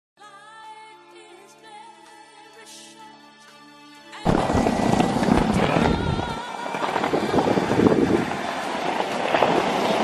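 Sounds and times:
city street ambience: 4.3 - 10.0.

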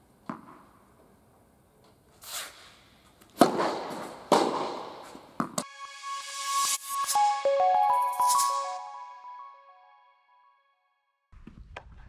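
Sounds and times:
tennis ball hits echoing: 3.4 - 5.6
electronic transition music: 5.6 - 10.1.

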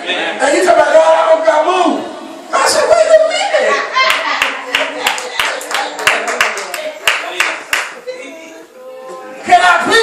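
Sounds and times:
hands clapping in rhythm: 4.1 - 8.0.

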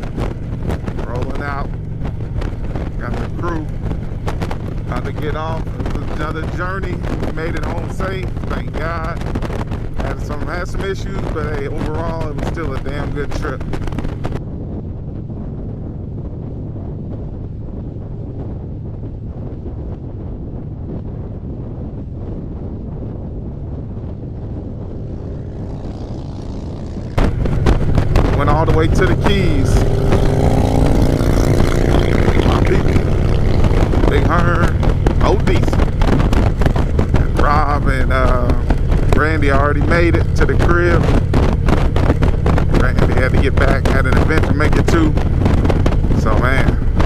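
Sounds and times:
motorcycle engine running: 0.0 - 47.0
wind rushing past microphone: 0.0 - 47.0.

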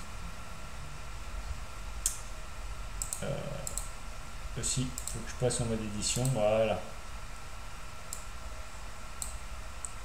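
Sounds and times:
faint steady hum: 0.0 - 10.0
computer mouse clicks: 3.0 - 3.9, 4.9 - 5.2, 6.1 - 6.4, 8.1 - 8.3, 9.2 - 10.0.

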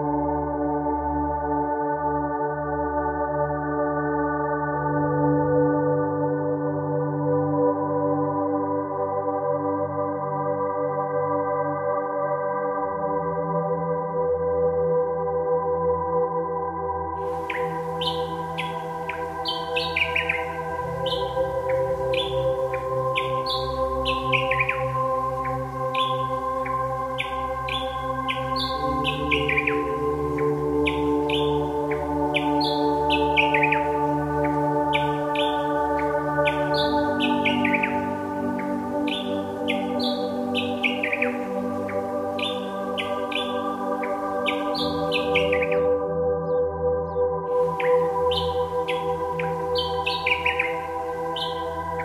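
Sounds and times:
ambient drone music: 0.0 - 52.0.

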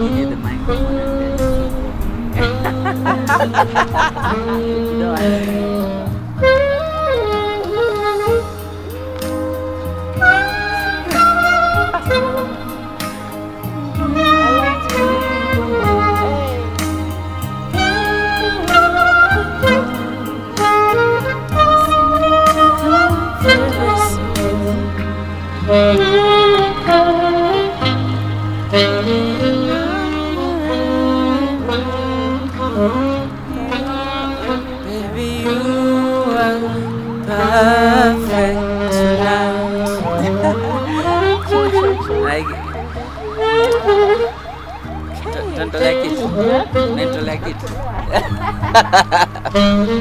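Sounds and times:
backing track with beat and bass: 0.0 - 50.0
saxophone melody: 0.0 - 50.0.

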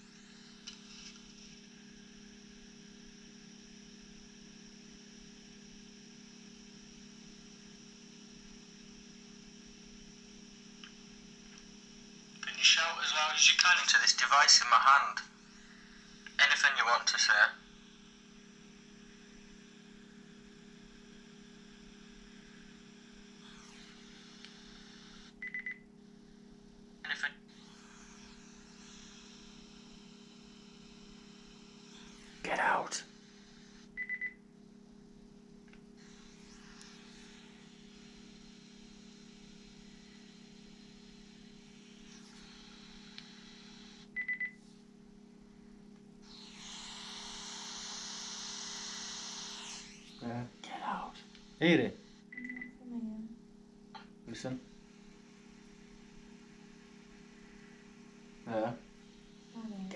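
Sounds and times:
steady low hum: 0.0 - 59.9
faint hiss: 46.2 - 52.7
short high beeps: 52.4 - 52.8.

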